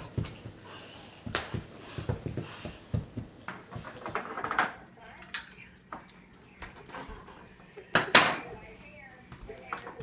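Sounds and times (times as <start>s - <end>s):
dishes clinking: 7.9s - 8.6s.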